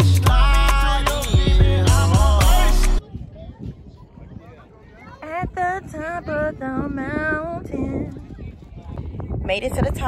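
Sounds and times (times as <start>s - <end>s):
wind rumble on microphone: 3.0s - 10.0s
woman singing: 5.2s - 8.1s.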